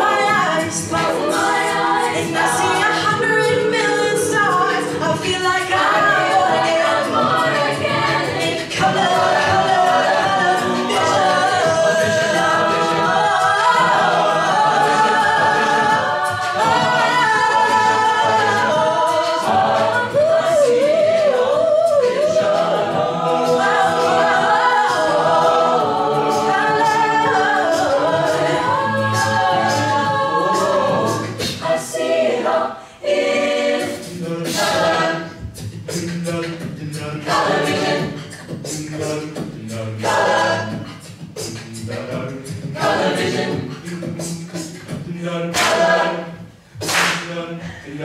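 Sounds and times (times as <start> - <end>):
lead voice singing: 0.0 - 46.4
a cappella group singing chords: 0.0 - 48.0
clicking vocal percussion: 33.0 - 48.0.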